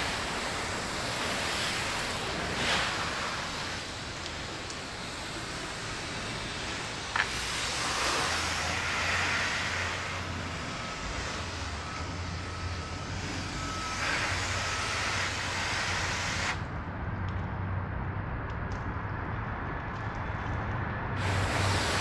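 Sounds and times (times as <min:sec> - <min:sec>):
hose spraying water on car: 0:00.0 - 0:16.6, 0:21.2 - 0:22.0.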